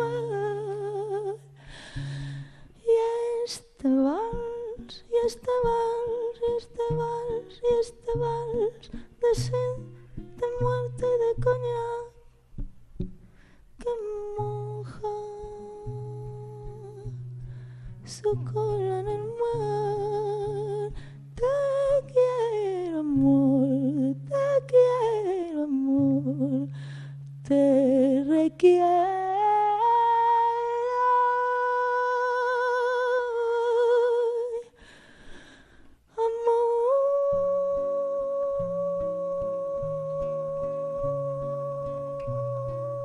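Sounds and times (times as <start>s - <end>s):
woman singing wordlessly: 0.0s - 1.6s, 2.7s - 12.7s, 13.8s - 34.8s, 36.1s - 43.0s
classical guitar: 0.0s - 43.0s.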